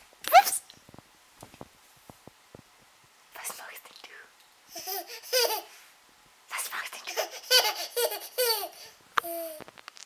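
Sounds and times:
baby laughing: 4.7 - 5.8, 7.0 - 9.6.

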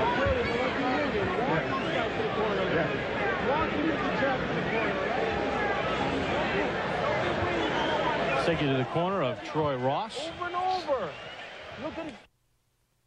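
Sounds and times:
crowd chattering and calling out: 0.0 - 12.3.

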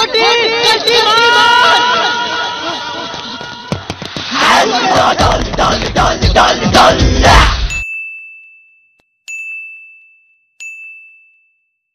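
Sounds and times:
people shouting: 0.0 - 7.7
loud music: 4.2 - 7.8
bright ding chime: 7.7 - 11.7.

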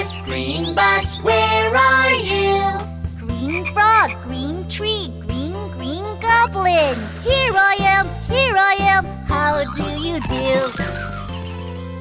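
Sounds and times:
children's song music: 0.0 - 12.0
cartoon frog croaks: 9.3 - 11.6.

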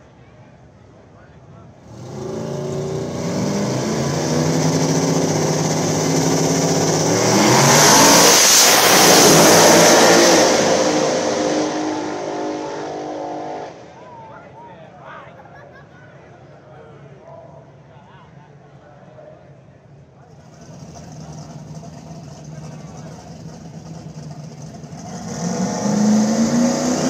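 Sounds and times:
drag car engines at full throttle: 1.7 - 14.0, 20.3 - 27.0.

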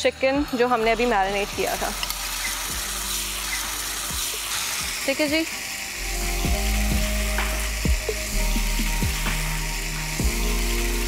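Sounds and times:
background music: 0.0 - 11.0
meat sizzling in hot oil: 1.2 - 11.0.

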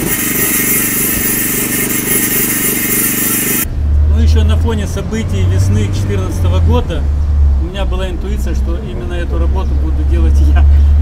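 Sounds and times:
angle grinder grinding stone: 0.0 - 3.7
generator engine running: 0.0 - 3.7.

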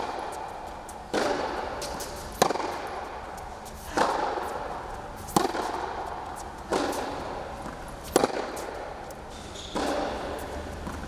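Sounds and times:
tennis balls hit by rackets: 0.0 - 11.0.

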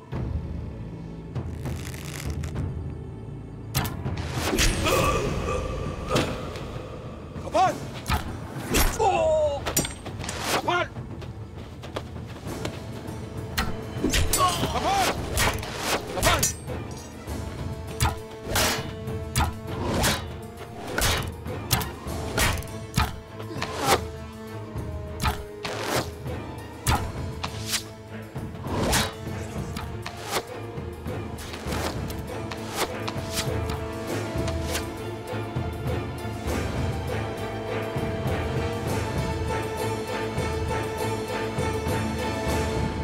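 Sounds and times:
dramatic music score: 0.0 - 43.0
arrows whooshing and thudding: 15.0 - 16.4, 18.0 - 24.0, 28.6 - 30.5, 31.4 - 33.8.

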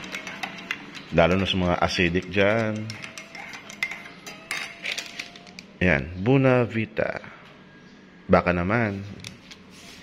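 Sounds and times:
spoon clinking against ceramic mug: 0.0 - 5.5.

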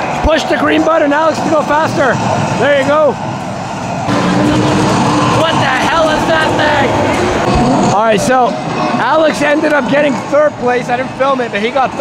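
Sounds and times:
arcade game car engine sounds: 0.0 - 12.0.

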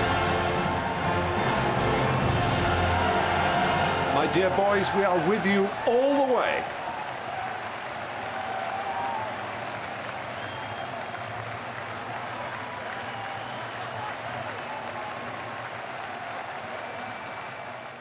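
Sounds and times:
crowd applauding: 0.0 - 18.0.

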